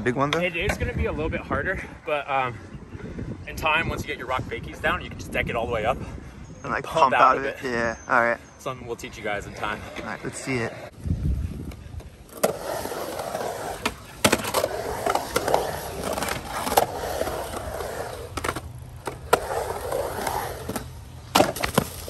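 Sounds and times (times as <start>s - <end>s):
skateboard wheels rolling on concrete: 0.1s - 2.6s, 8.8s - 22.0s
skateboard clattering: 12.3s - 22.0s
skateboard clacking on concrete: 12.4s - 22.0s.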